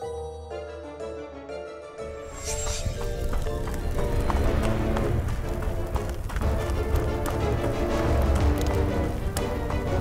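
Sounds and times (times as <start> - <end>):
background music: 0.0 - 10.0
cartoon running footsteps: 2.5 - 10.0.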